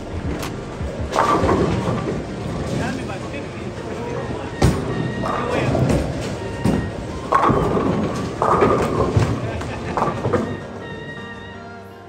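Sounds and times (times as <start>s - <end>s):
bowling pins hit: 0.0s - 10.8s
bowling ball rolling: 0.0s - 11.6s
background music: 0.0s - 12.0s.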